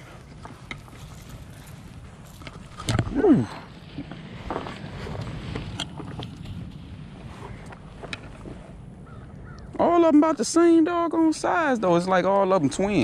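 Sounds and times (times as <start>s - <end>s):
fishing gear clicks and rustling: 0.0s - 6.9s.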